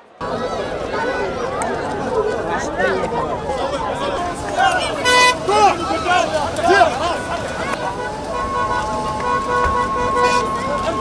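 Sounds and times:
crowd shouting: 0.0 - 11.0
vehicle horns: 4.6 - 11.0.

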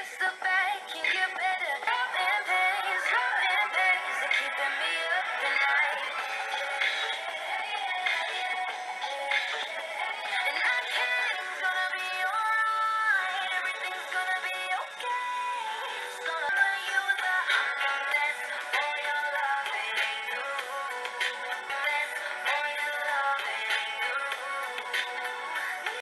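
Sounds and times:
pop song with sung vocal: 0.0 - 26.0.

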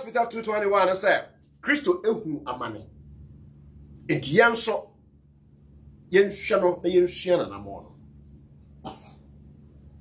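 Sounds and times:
low steady hum: 0.0 - 10.0
person coughing: 8.8 - 9.3.

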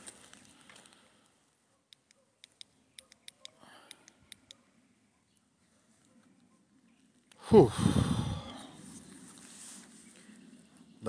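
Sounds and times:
faint sharp irregular clicks: 0.4 - 4.6.

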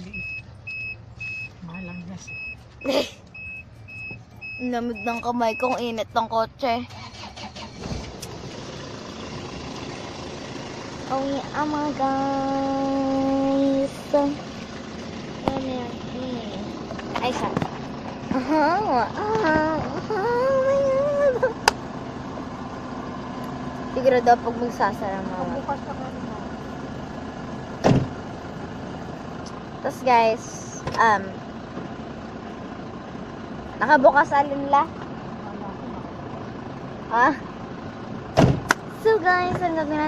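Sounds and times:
vehicle engine and road rumble: 0.0 - 40.0
car door slamming: 27.8 - 28.2, 38.3 - 38.8
low thump: 27.8 - 28.2, 38.4 - 38.8.

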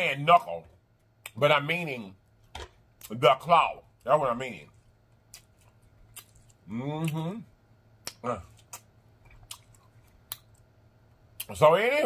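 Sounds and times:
chewing: 4.7 - 7.2, 8.0 - 10.7
wet mouth clicks: 8.0 - 10.6.

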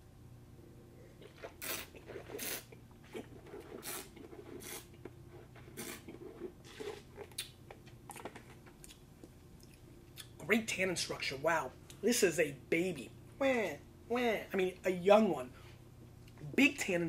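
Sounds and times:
wine slurping: 1.1 - 7.4
wine swishing in mouth: 1.2 - 7.2.

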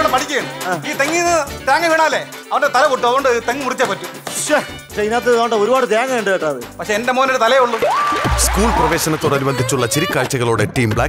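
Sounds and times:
background music: 0.0 - 11.0
person talking: 8.4 - 11.0.

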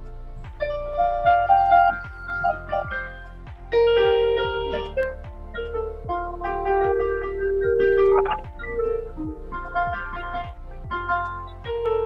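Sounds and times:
electronic keyboard melody: 0.0 - 12.0
sustained keyboard chord: 0.0 - 12.0.

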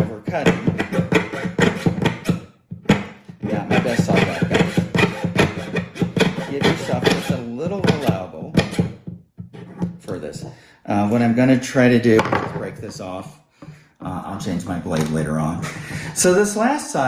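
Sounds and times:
saw blade cutting metal sheet: 0.0 - 8.9.

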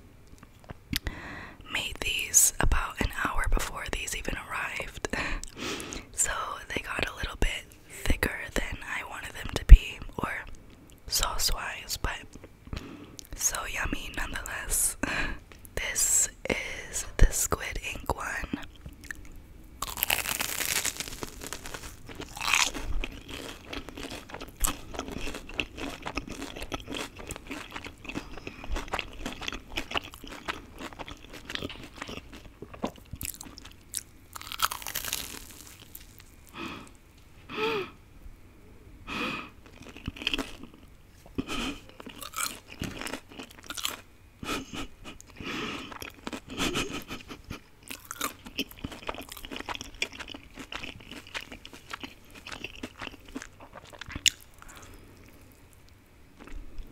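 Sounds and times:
crunchy bites: 19.0 - 37.0, 39.6 - 40.8, 41.4 - 44.1, 47.9 - 55.4
chewing with wet mouth clicks: 22.1 - 35.0, 39.6 - 44.0, 45.2 - 56.6.

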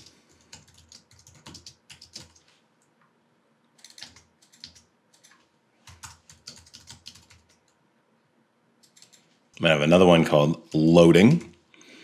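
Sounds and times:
computer keyboard typing: 0.0 - 2.5, 3.8 - 7.8, 8.8 - 9.3.

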